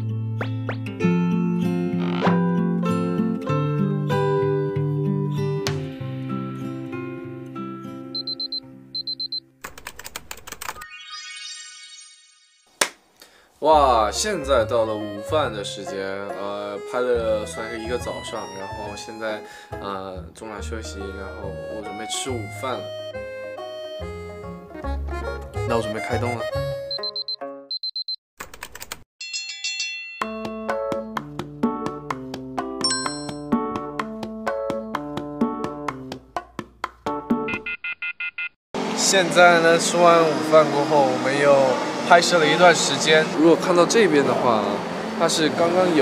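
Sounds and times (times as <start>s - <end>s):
acoustic guitar music: 0.0s - 9.0s
alarm clock beeps: 8.2s - 9.4s, 26.9s - 28.2s, 37.5s - 38.6s
typing-like clicks: 9.6s - 10.8s, 28.4s - 29.0s
bell-like ding: 29.2s - 30.5s, 32.8s - 33.4s.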